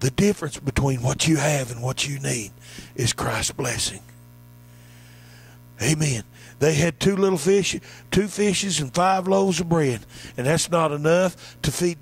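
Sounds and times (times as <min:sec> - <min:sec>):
man's voice: 0:00.0 - 0:04.1, 0:05.8 - 0:12.0
electrical mains hum: 0:00.0 - 0:12.0.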